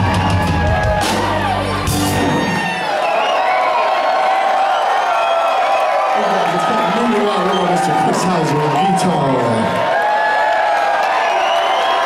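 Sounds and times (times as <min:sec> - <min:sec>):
crowd cheering and whooping: 0:00.0 - 0:12.0.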